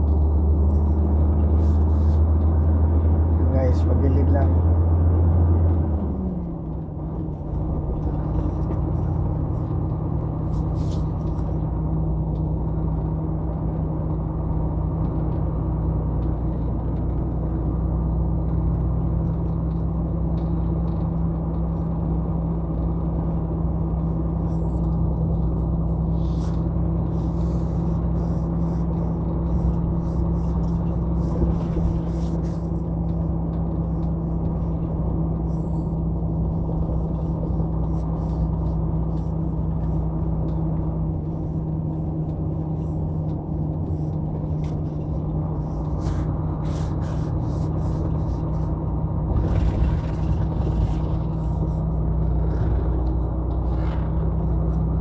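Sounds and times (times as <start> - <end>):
diesel truck engine running: 0.0 - 55.0
tyre and road noise: 0.0 - 55.0.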